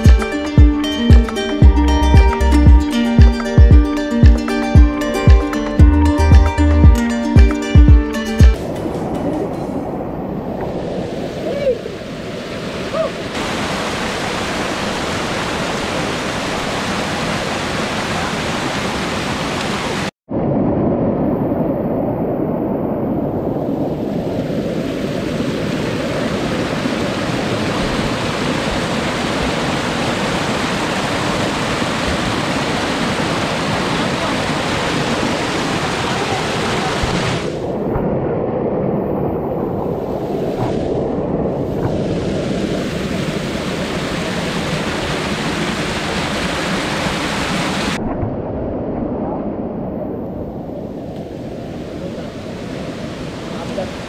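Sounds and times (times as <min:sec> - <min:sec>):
waterfall rushing over boulders: 0:10.7 - 0:20.1, 0:24.3 - 0:37.6, 0:41.6 - 0:48.0, 0:51.5 - 0:54.0.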